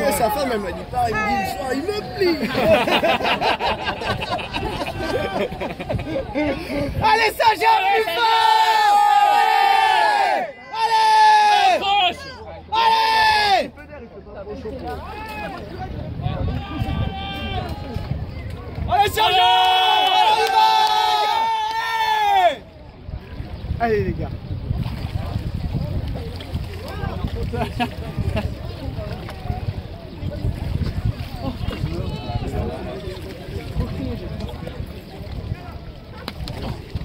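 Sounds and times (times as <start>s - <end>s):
people talking: 0.0s - 8.4s, 25.0s - 37.0s
people shouting cheers: 7.0s - 13.7s, 16.2s - 18.2s, 18.8s - 22.6s
small waves lapping: 22.4s - 37.0s.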